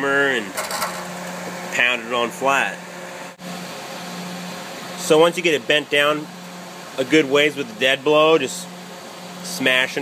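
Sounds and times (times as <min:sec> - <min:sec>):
machine hum with hiss: 0:00.0 - 0:10.0.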